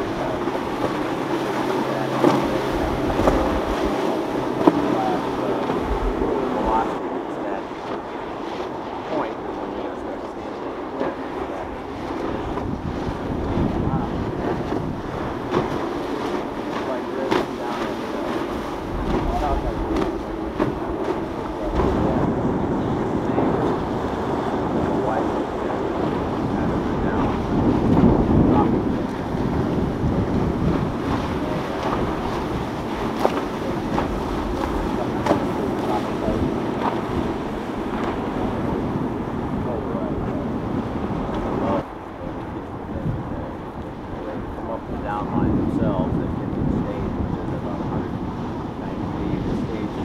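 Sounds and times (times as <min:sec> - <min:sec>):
boat engines running: 0:00.0 - 0:50.0
ocean surf: 0:00.0 - 0:50.0
wind buffeting microphone: 0:00.0 - 0:50.0
faint background voices: 0:01.5 - 0:12.6.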